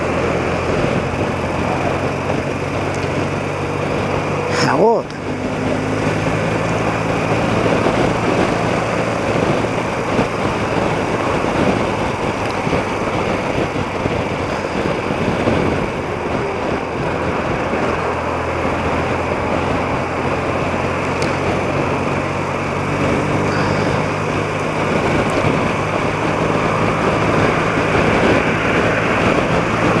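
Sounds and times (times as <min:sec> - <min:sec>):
motorcycle engine running steadily: 0:00.0 - 0:30.0
road noise: 0:00.0 - 0:30.0
wind rushing: 0:00.0 - 0:30.0.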